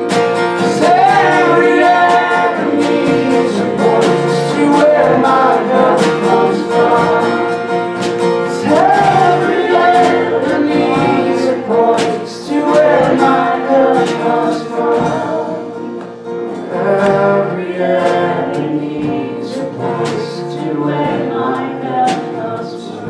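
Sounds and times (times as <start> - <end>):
group singing worship song: 0.0 - 23.0
strummed acoustic guitar: 0.0 - 23.0.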